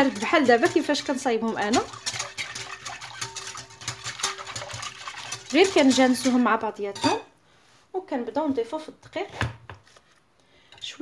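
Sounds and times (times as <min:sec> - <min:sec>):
whisk clicking against glass bowl: 0:00.0 - 0:06.6.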